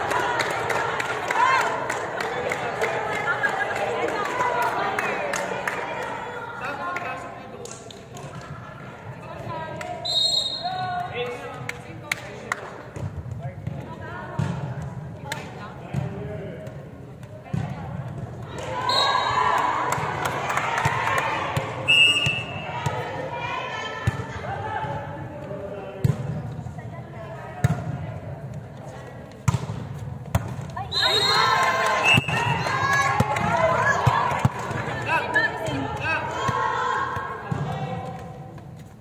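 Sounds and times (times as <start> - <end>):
volleyball smacks: 29.4 - 30.7
women calling and cheering: 30.9 - 37.5.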